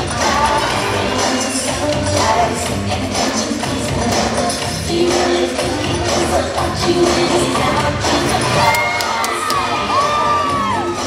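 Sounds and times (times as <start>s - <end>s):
dance music: 0.0s - 11.0s
spectators whooping and cheering: 8.5s - 11.0s.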